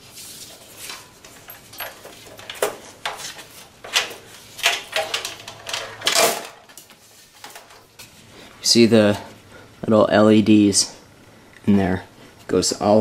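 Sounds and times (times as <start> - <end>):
metal knocking and scraping: 0.6 - 7.9.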